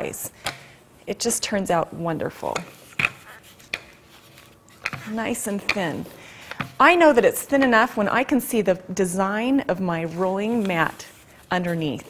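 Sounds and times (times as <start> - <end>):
rolling pin rolling dough: 2.4 - 8.3, 9.5 - 12.0.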